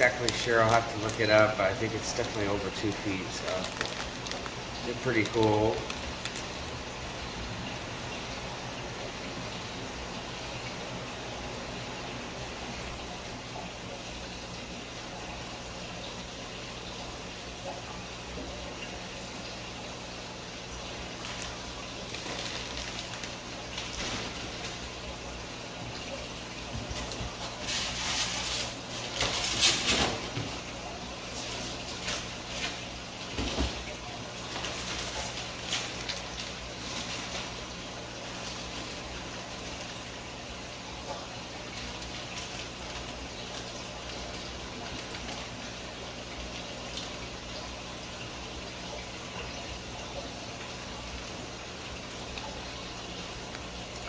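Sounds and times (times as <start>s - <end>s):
aquarium water bubbling: 0.0s - 54.0s
low electrical hum: 0.0s - 54.0s.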